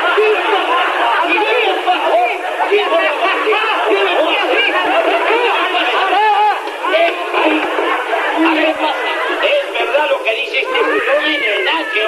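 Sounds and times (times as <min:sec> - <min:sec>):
people laughing: 0:00.0 - 0:12.0
people shouting: 0:00.0 - 0:12.0.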